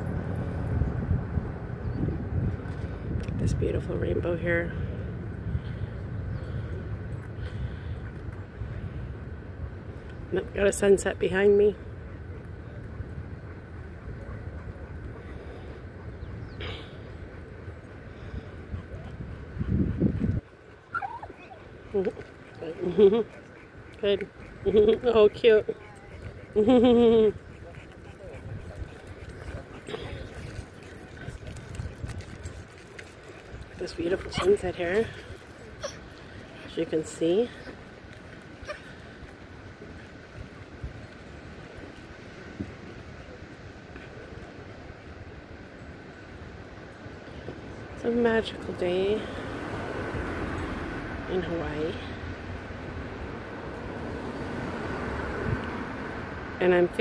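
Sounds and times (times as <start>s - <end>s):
wind buffeting microphone: 0.0s - 57.0s
high bending animal calls: 20.9s - 21.6s.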